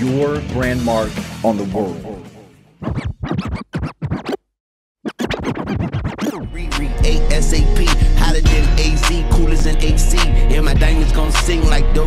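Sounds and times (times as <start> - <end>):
record scratching: 2.8 - 6.4
hip-hop beat with heavy bass: 5.2 - 12.0.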